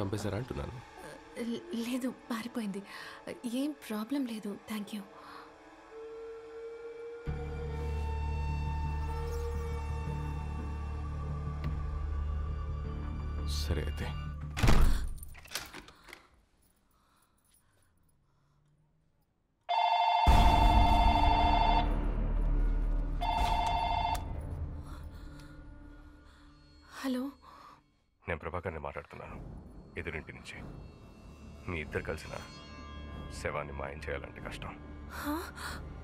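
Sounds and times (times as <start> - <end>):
phone ringing double-tone: 19.7 - 21.8, 23.2 - 24.3.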